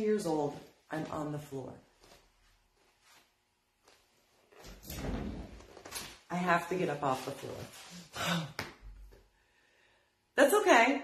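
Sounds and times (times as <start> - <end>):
rustle of body movement: 1.9 - 8.1.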